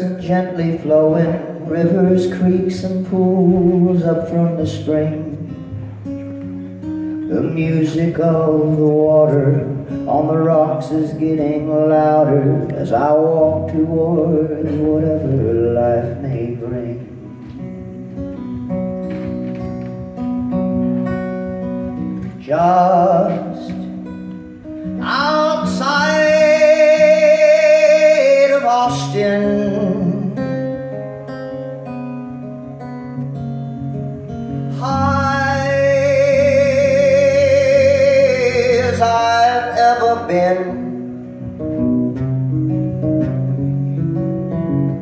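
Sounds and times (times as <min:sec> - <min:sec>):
man singing with vibrato: 0:00.0 - 0:05.8, 0:06.8 - 0:17.5, 0:22.0 - 0:31.0, 0:34.3 - 0:41.7
acoustic guitar: 0:00.0 - 0:45.0.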